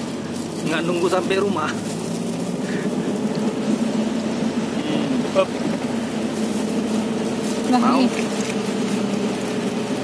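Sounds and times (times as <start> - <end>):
vehicle engine idling: 0.0 - 10.0.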